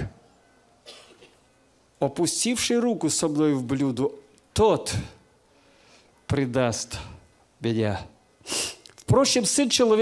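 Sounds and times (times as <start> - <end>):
person coughing: 0.8 - 1.4.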